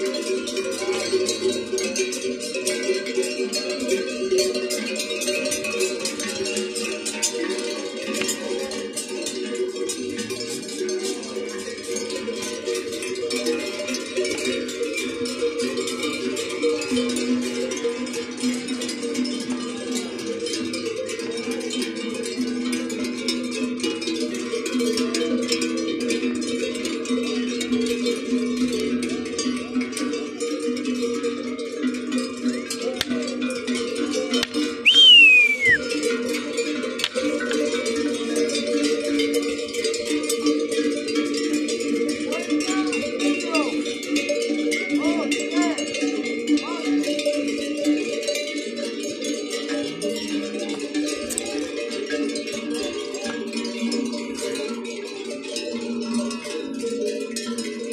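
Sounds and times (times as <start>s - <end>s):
cowbells clanking: 0.0s - 57.9s
whistle sliding down in pitch: 34.9s - 35.8s.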